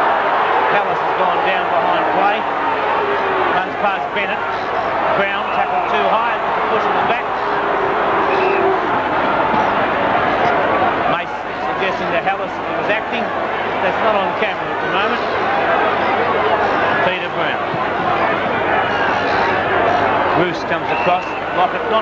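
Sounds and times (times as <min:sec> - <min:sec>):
football crowd shouting: 0:00.0 - 0:22.0.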